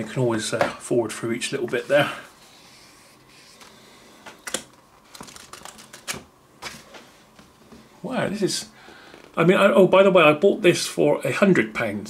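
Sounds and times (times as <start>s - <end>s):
book pages turning: 2.5s - 7.5s.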